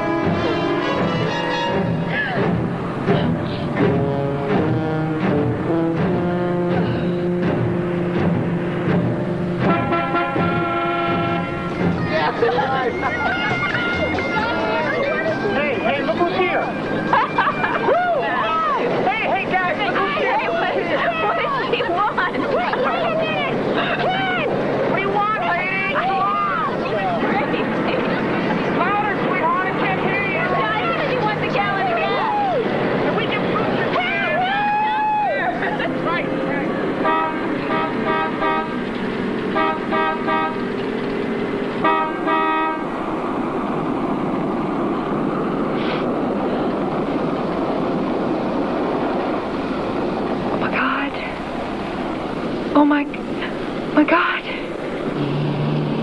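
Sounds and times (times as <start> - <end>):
voices shouting and hooting: 0.0 - 4.5, 9.7 - 38.8
tense film score chords: 0.0 - 12.4.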